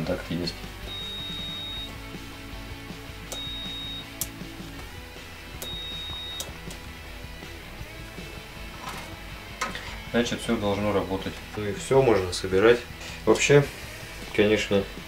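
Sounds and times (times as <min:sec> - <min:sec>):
multimeter continuity beep: 0:00.9 - 0:02.0, 0:03.3 - 0:04.2, 0:05.6 - 0:06.6
push-button clicks: 0:03.3 - 0:04.4, 0:05.6 - 0:06.8.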